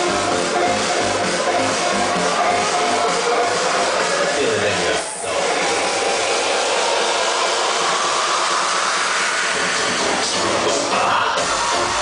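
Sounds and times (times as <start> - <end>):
dance music noise wash: 0.0 - 12.0.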